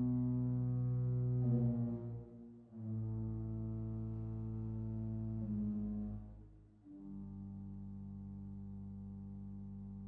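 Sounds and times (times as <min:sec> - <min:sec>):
pipe organ chords: 0:00.0 - 0:10.0.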